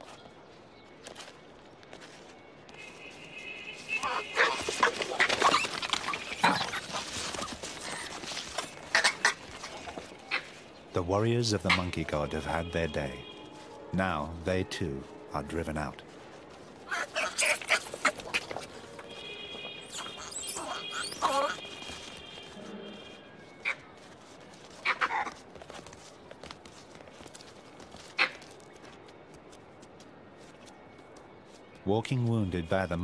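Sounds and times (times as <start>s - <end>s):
monkeys calling and screeching: 3.9s - 10.7s, 16.8s - 24.0s, 24.6s - 25.4s.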